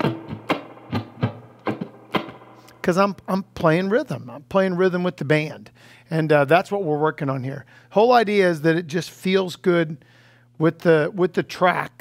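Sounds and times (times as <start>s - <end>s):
percussive electric guitar strums: 0.0s - 3.0s.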